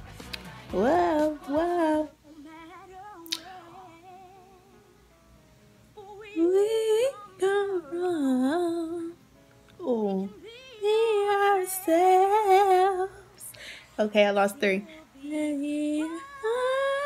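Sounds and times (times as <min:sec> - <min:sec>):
woman singing: 0:00.0 - 0:04.8, 0:06.0 - 0:09.2, 0:09.8 - 0:17.0
faint pop song: 0:00.0 - 0:17.0.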